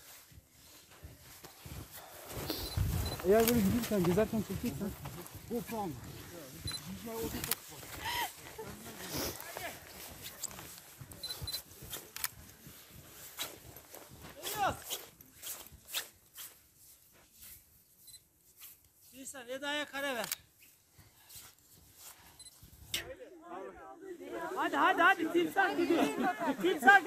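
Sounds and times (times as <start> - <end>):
footsteps crunching in snow: 0.0 - 19.5
faint group voices: 23.0 - 27.0.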